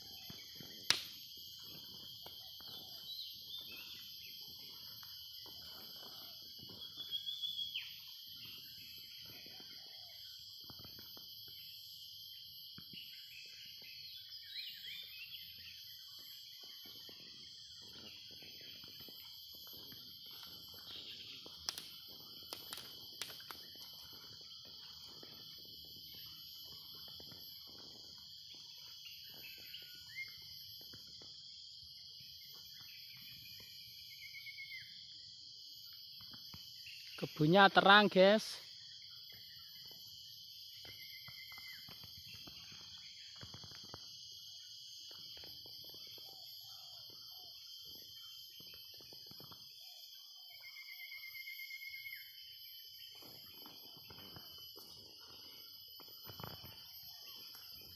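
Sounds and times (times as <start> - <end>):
insects chorus: 0.0 - 57.9.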